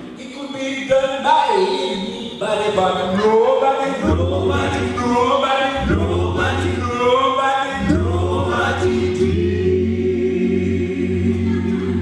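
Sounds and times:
male a cappella group singing: 0.4 - 12.0
deep bass voice: 5.8 - 7.2, 7.8 - 12.0.

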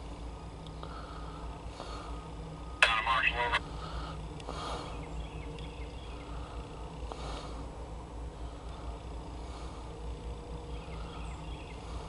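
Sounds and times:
steady low hum: 0.0 - 12.0
short voice burst: 2.8 - 3.6.

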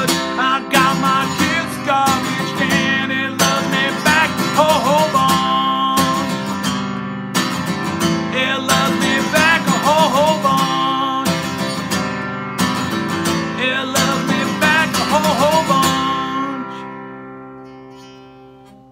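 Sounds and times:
acoustic guitar strummed chords: 0.0 - 18.9.

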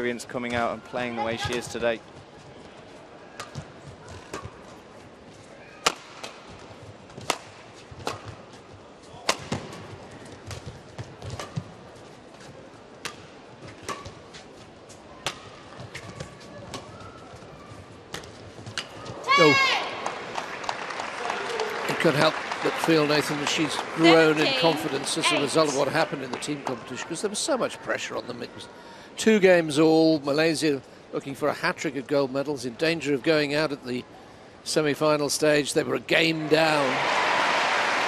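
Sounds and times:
low arena hubbub: 0.0 - 38.0
rackets hitting shuttlecock: 5.8 - 6.5, 7.2 - 8.4
person shouting: 19.3 - 19.9
crowd cheering and applause: 19.3 - 26.8, 36.3 - 38.0.

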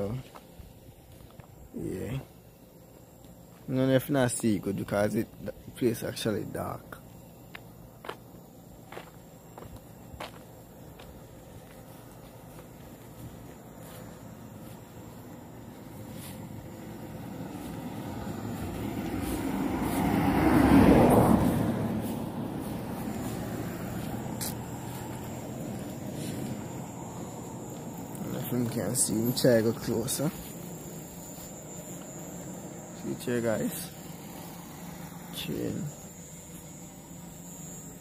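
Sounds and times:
motor vehicle passing: 10.7 - 38.0.

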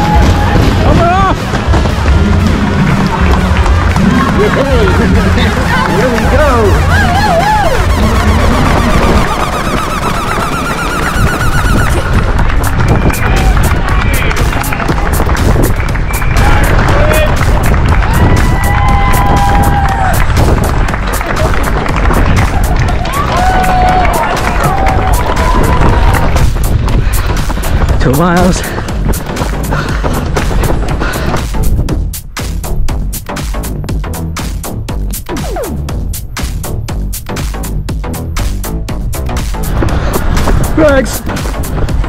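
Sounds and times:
background music: 0.0 - 42.0
deep rumble: 0.0 - 42.0
running footsteps: 0.0 - 42.0.

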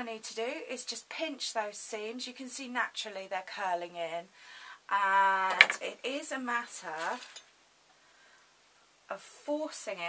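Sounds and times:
woman speaking: 4.9 - 7.4, 9.1 - 10.0.

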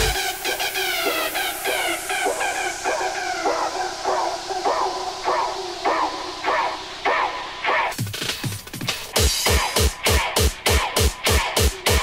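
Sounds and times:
high hiss: 0.0 - 7.7.

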